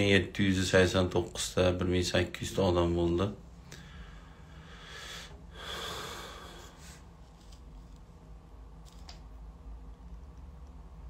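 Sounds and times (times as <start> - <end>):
man breathing close to microphone: 3.6 - 7.2.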